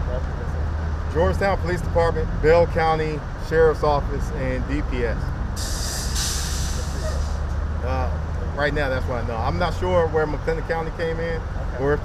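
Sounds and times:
loud air hiss: 5.6 - 7.5.

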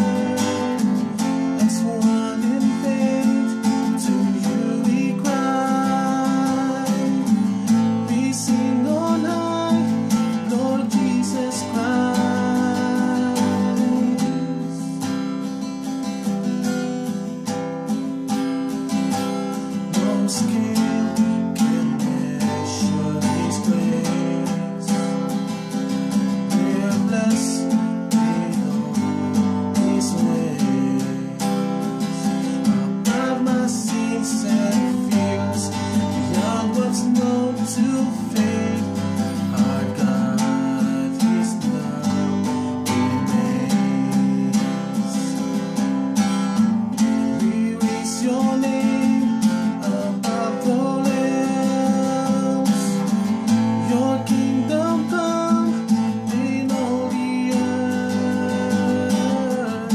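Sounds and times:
acoustic guitar strumming: 0.0 - 59.9
man singing: 0.0 - 59.9.

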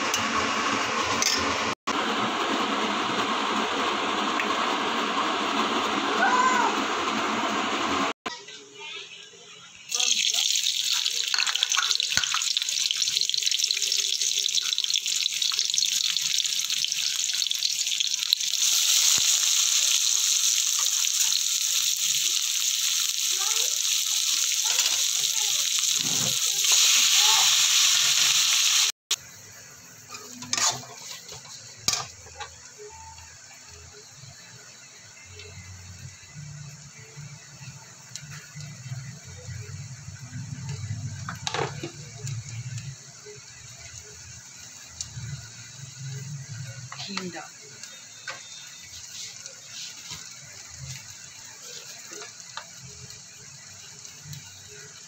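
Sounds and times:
food sizzling in hot oil: 9.8 - 55.0.

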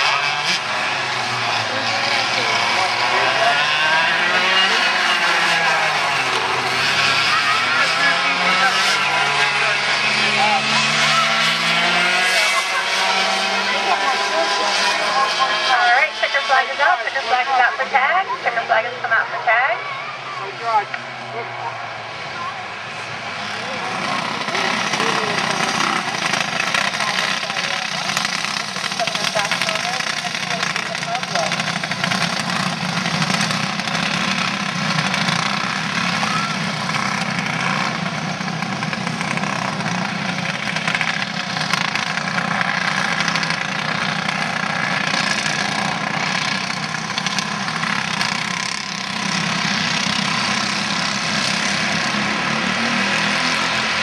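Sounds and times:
racing kart engines: 0.0 - 54.0.

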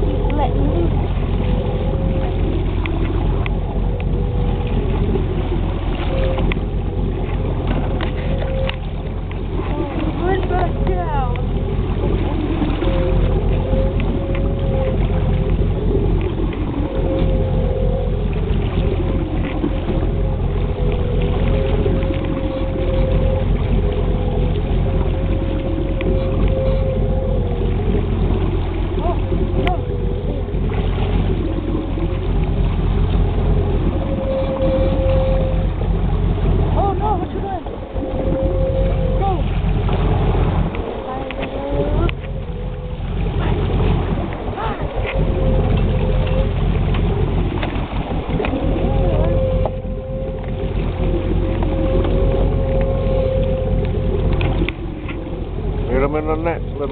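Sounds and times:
boat motor humming: 0.0 - 56.9.

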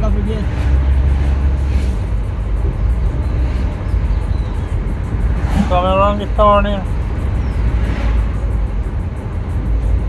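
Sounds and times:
vehicle engine and tyres rumbling: 0.0 - 10.0.

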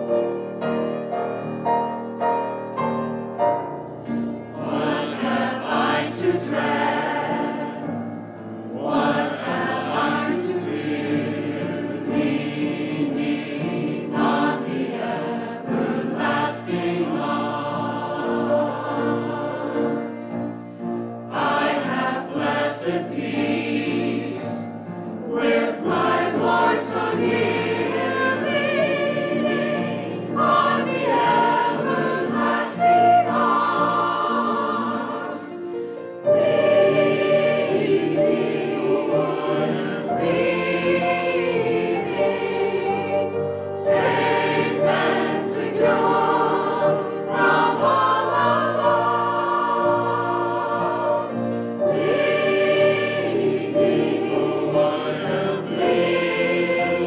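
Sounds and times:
choir singing in parts: 1.8 - 57.0.

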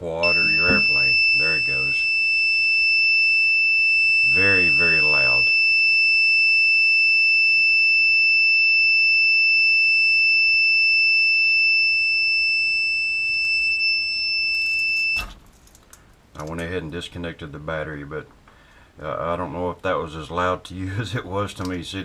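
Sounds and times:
high-pitched buzzer tone: 0.2 - 15.3.

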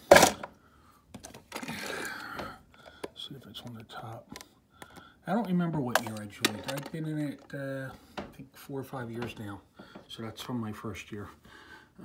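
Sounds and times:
plastic case handling noise: 0.0 - 3.2, 4.3 - 7.6.

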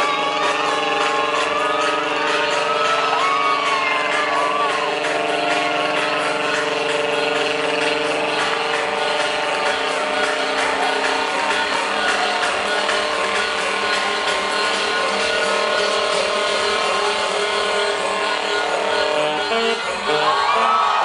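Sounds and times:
crowd voices: 0.0 - 21.0
loud electronic dance music: 0.0 - 21.0.

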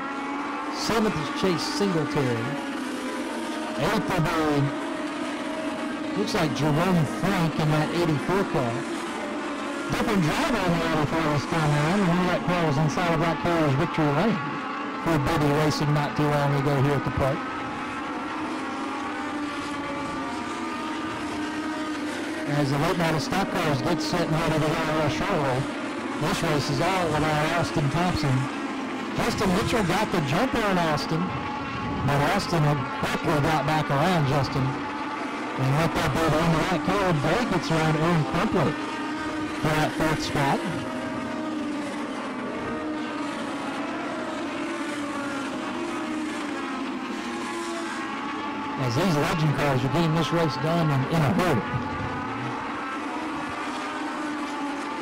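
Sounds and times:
race car engines droning: 0.0 - 55.0.

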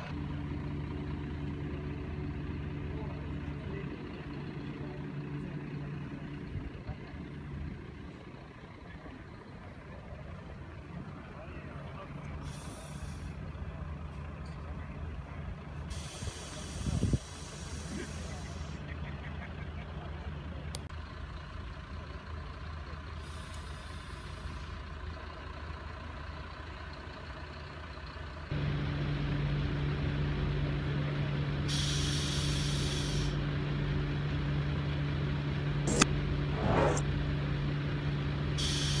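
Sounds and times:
railcar engine idling: 0.0 - 39.0
compressed air hisses: 12.4 - 13.4, 15.9 - 18.8, 31.7 - 33.4, 38.6 - 39.0.

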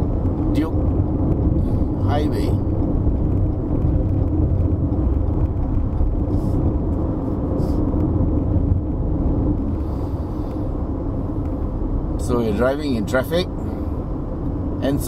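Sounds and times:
car engine at low revs: 0.0 - 15.0
road and tyre rumble: 0.0 - 15.0.

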